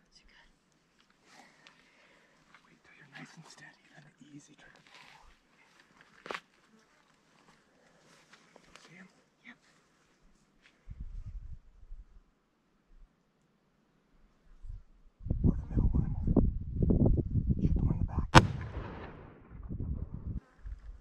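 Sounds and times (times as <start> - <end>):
people whispering: 0.0 - 0.6, 1.2 - 6.0, 7.6 - 9.8, 15.4 - 16.3.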